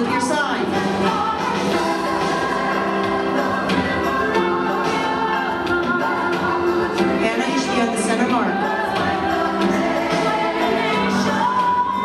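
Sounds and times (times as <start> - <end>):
choir singing long held notes: 0.8 - 7.2, 8.5 - 12.0.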